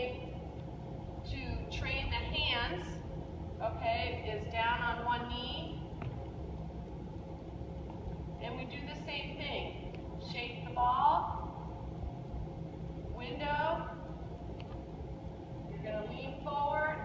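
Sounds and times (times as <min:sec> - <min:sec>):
low room hum: 0:00.0 - 0:17.0
woman speaking: 0:01.3 - 0:03.0, 0:03.6 - 0:05.8, 0:08.4 - 0:11.4, 0:13.2 - 0:13.9, 0:15.7 - 0:17.0.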